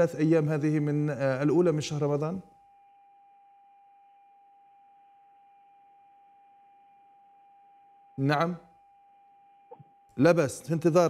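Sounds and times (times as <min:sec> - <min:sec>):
steady telephone line tone: 0:00.0 - 0:10.2.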